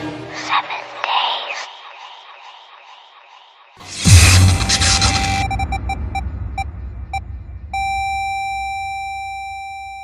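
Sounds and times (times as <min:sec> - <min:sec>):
low rumble: 0:01.4 - 0:08.8
flatline tone: 0:04.6 - 0:10.0
heart monitor beeps: 0:05.0 - 0:10.0.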